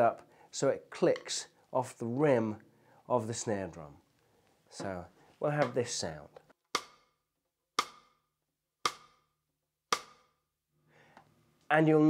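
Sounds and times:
drumstick clicking on snare rim: 6.8 - 7.1, 7.8 - 8.2, 8.8 - 9.2.

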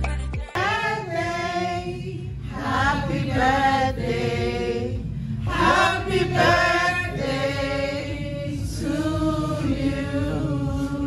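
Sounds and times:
choir singing held chords: 0.5 - 11.0.

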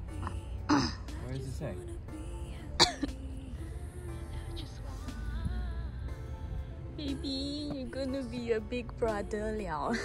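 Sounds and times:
quiet background music: 0.0 - 10.0
person's cough-like vocal burst: 2.8 - 3.1.

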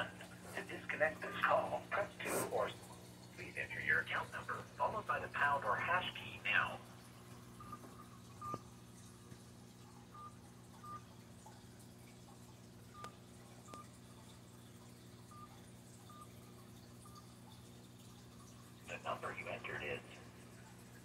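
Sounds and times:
keypad beeps: 7.6 - 8.7, 10.1 - 11.1, 15.3 - 16.4.

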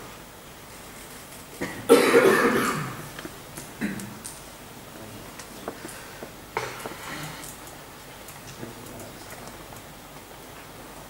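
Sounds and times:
person coughing: 1.6 - 3.1, 3.8 - 4.1.

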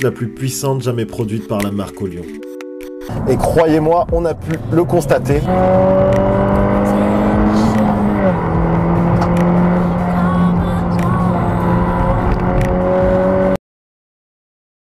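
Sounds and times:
car engine running hard: 3.1 - 13.6.

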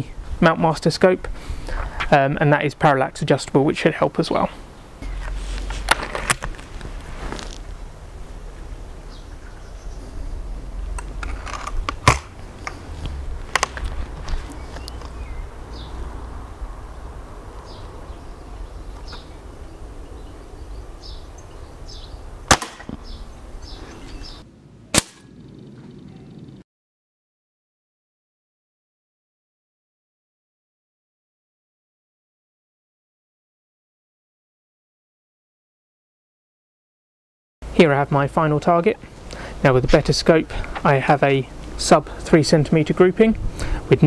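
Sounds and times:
wind rumble on microphone: 4.8 - 26.6, 43.1 - 44.0
air rifle cocking clicks: 13.5 - 14.0
air rifle firing crack: 22.5 - 23.2, 24.9 - 25.4.

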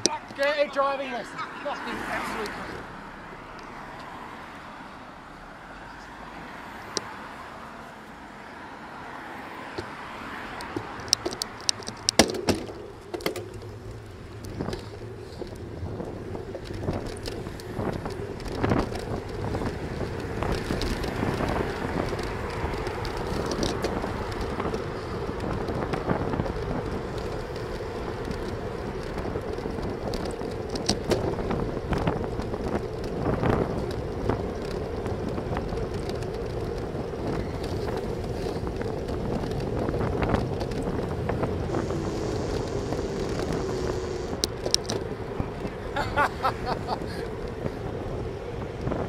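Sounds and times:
bicycle tyre and road noise: 0.0 - 49.0
wind rushing over microphone: 9.6 - 49.0
sharp knocks and rattles: 10.7 - 15.6.

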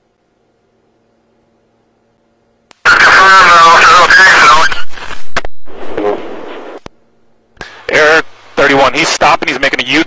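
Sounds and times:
police radio voice transmission: 2.9 - 4.8.

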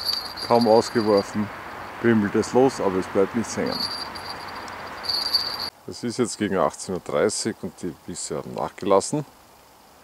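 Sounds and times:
small bells jingling faintly: 0.0 - 5.7.

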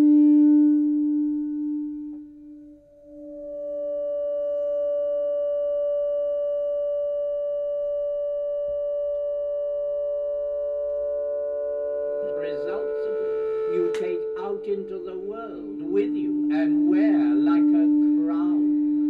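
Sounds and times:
low synthesizer tone: 0.0 - 19.0
lower synthesizer tone: 0.0 - 19.0
synthesizer drone with overtones: 0.0 - 19.0.

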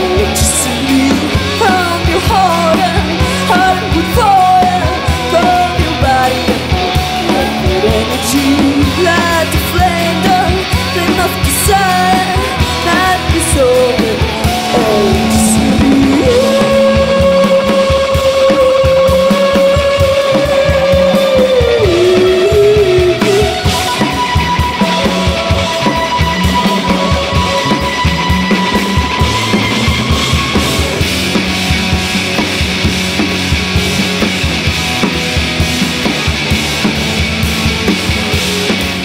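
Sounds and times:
bass guitar: 0.0 - 39.0
electric guitars: 0.0 - 39.0
drum kit beat: 11.2 - 39.0
held high note bending: 14.5 - 19.2.

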